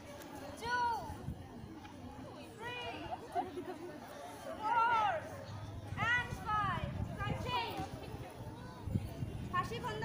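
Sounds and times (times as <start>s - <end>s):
girls chattering: 0.6s - 10.0s.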